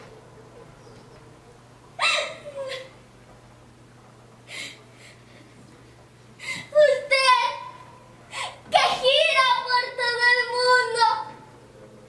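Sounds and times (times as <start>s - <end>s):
girl sobbing: 2.0s - 3.0s.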